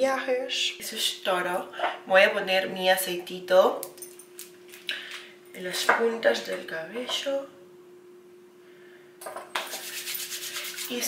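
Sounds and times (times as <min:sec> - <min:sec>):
faint steady hum: 0:00.0 - 0:11.0
hands rubbing hair: 0:09.6 - 0:11.0.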